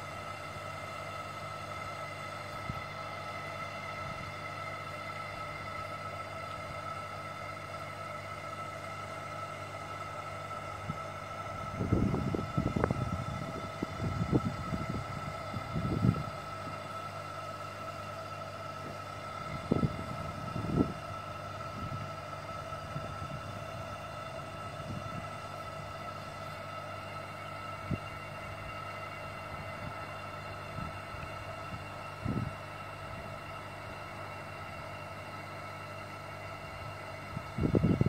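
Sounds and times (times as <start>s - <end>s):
air pump humming: 0.0s - 38.0s.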